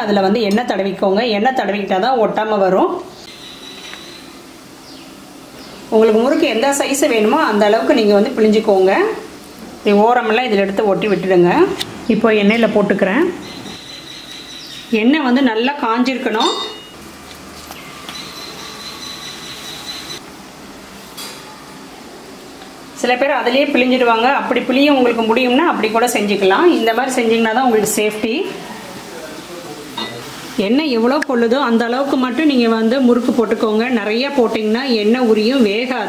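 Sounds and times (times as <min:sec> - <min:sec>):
high-pitched tone: 0:16.3 - 0:17.0
oil sizzling while deep-frying: 0:27.6 - 0:36.0
food sizzling in hot oil: 0:29.4 - 0:30.8.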